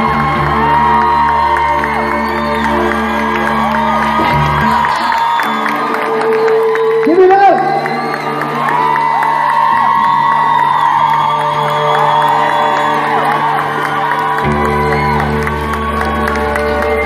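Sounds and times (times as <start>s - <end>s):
crowd cheering and whooping: 0.0s - 17.0s
live band sustained chords: 0.0s - 17.0s.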